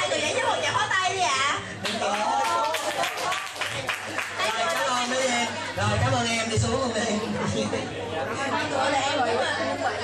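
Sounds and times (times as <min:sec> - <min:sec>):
people talking in a large room: 0:00.0 - 0:10.0.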